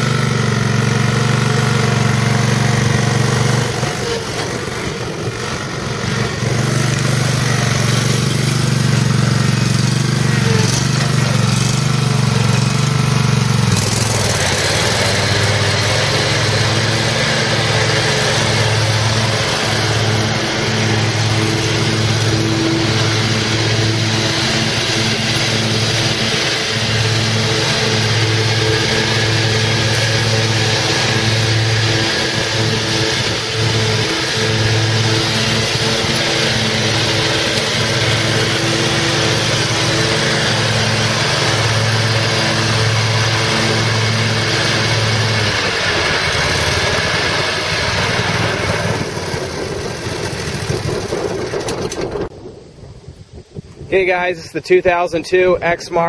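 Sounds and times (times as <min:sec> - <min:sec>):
mower engine running: 0:00.0 - 0:56.0.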